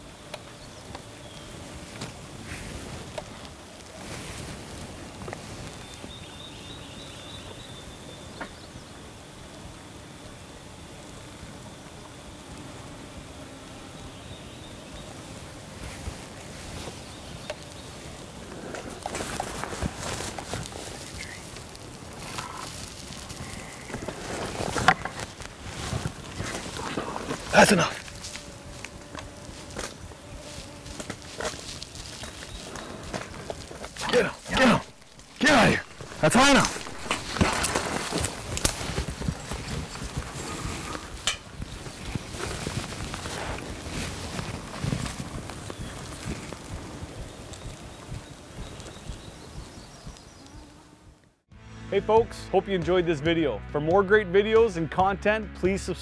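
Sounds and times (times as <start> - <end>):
brush rustling: 15.1 - 50.7.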